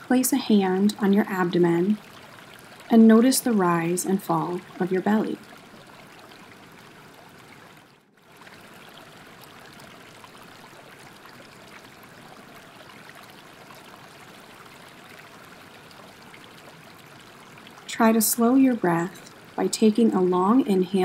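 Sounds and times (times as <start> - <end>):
stream water rushing: 0.0 - 21.0.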